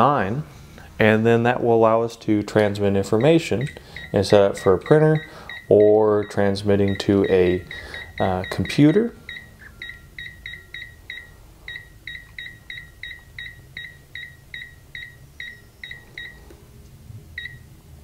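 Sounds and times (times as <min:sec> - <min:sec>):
short high keypad beeps: 0:03.2 - 0:16.4, 0:17.4 - 0:17.6.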